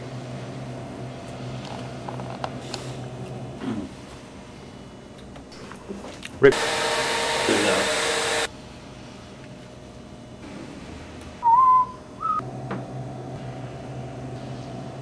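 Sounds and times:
short whistled notes: 11.4 - 12.4.

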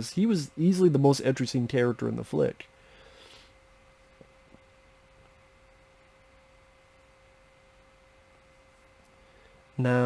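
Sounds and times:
faint high-pitched hum: 0.0 - 10.0.

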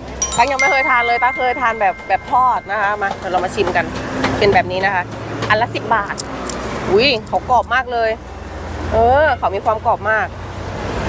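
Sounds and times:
person speaking: 0.2 - 3.8.

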